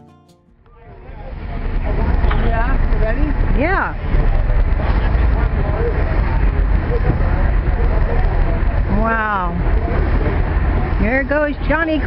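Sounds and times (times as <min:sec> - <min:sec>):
low street rumble: 0:00.6 - 0:12.0
faint voices: 0:00.7 - 0:12.0.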